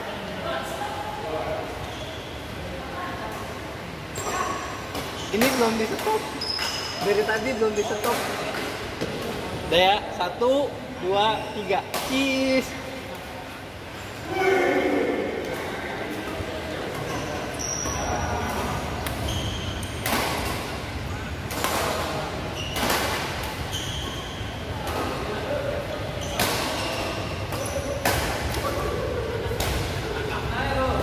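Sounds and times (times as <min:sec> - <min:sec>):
shoes squeaking on court: 0:04.2 - 0:08.4, 0:17.0 - 0:20.0, 0:22.5 - 0:24.6, 0:26.2 - 0:28.0.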